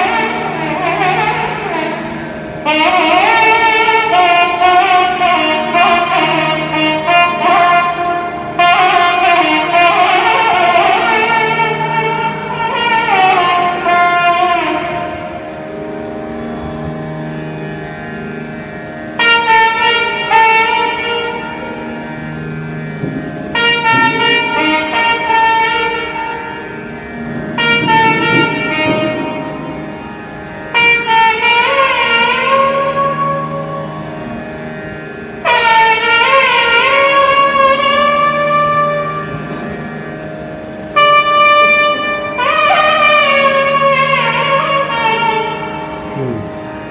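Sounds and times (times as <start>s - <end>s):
steady drone: 0.0s - 46.9s
wind instrument long held notes: 0.0s - 46.9s.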